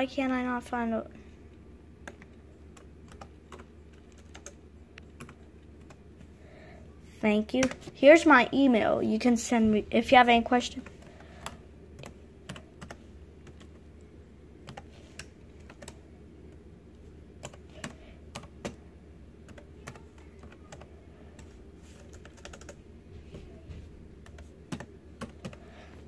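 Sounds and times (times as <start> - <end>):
typing on laptop keyboard: 2.0 - 6.0, 10.8 - 13.8, 14.6 - 16.0, 17.4 - 18.8, 19.4 - 22.8, 24.2 - 25.7.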